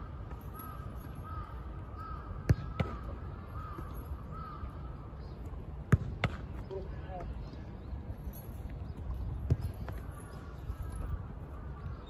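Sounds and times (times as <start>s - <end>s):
soccer ball thuds: 2.4s - 3.1s, 5.8s - 6.6s, 9.4s - 10.0s.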